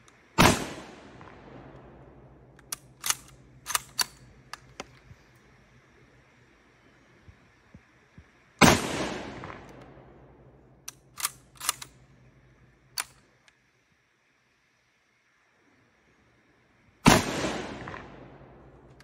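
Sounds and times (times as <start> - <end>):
rifle shots: 0.4 - 4.3, 8.6 - 10.2, 17.0 - 18.7
rifle bolt clacking: 2.5 - 5.0, 10.9 - 12.0.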